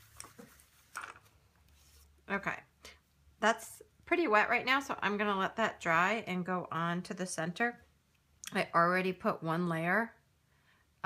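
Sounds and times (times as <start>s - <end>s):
paper rustling on cloth: 0.0s - 2.2s.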